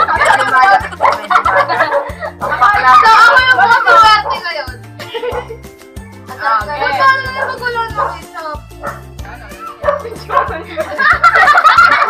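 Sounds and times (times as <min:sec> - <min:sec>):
young people laughing and shrieking: 0:00.0 - 0:05.7, 0:09.5 - 0:12.0
background music with bass line: 0:00.0 - 0:12.0.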